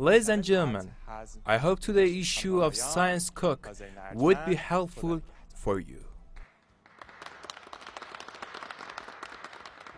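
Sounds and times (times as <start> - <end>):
crowd applauding: 6.4 - 9.9.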